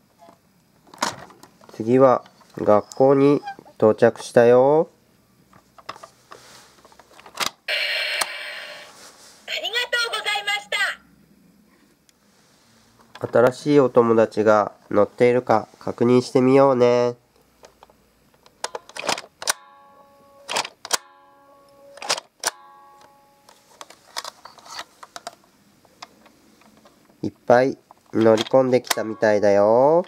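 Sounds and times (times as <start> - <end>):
plastic toy being handled: 5.5 - 7.5, 18.6 - 19.3, 23.6 - 27.2, 27.9 - 29.0
toy electronic sound effect: 7.7 - 8.9
plastic toys clicking and clattering: 18.4 - 19.6, 20.5 - 21.0, 22.0 - 22.3, 27.9 - 29.1
faint steady tone: 19.5 - 23.8, 28.9 - 29.9.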